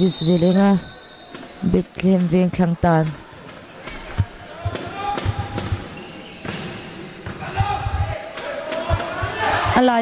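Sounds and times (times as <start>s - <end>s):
players and crowd shouting: 3.8s - 5.9s, 7.2s - 10.0s.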